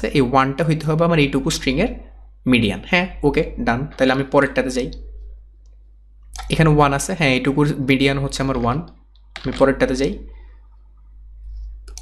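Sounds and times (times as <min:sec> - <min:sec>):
man speaking: 0:00.0 - 0:05.2, 0:06.4 - 0:10.4
faint low hum: 0:00.0 - 0:12.0.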